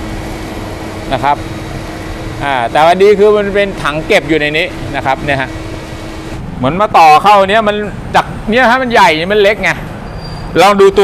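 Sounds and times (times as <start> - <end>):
vacuum cleaner running: 0.0 - 6.4.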